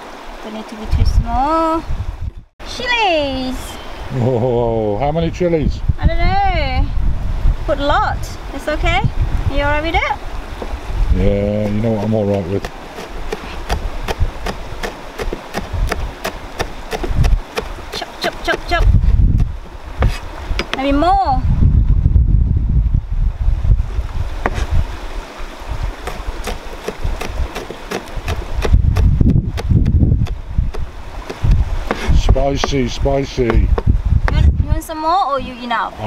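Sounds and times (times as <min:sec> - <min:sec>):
knife chopping on plastic board: 0:11.6 - 0:19.0, 0:26.1 - 0:34.5.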